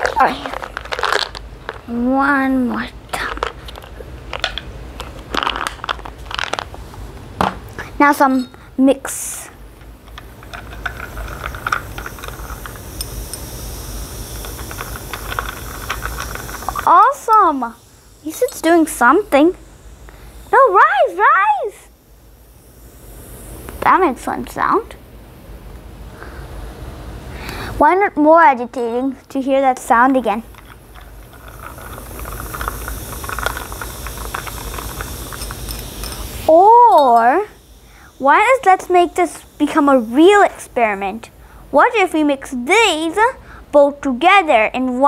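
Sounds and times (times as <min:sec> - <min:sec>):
fizzing hiss with crackles: 0:08.1 - 0:24.7, 0:29.4 - 0:43.2
plastic spoon stirring in glass: 0:10.2 - 0:13.4, 0:14.4 - 0:17.5, 0:30.5 - 0:37.3.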